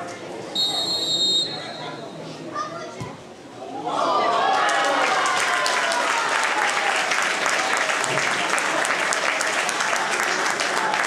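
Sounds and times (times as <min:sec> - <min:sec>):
spectators talking: 0:00.0 - 0:11.0
crowd cheering: 0:03.6 - 0:11.0.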